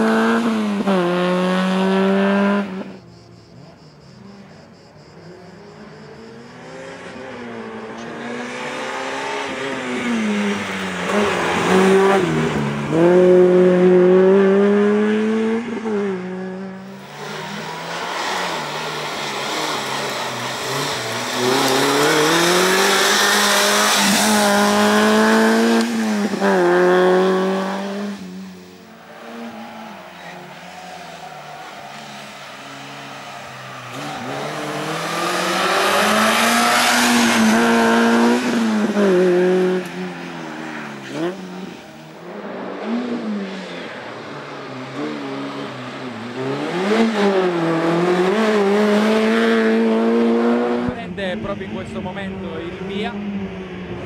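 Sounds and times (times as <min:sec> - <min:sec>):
car engine revving hard: 0:00.0 - 0:02.9, 0:06.6 - 0:30.7, 0:31.4 - 0:41.8, 0:42.5 - 0:51.4.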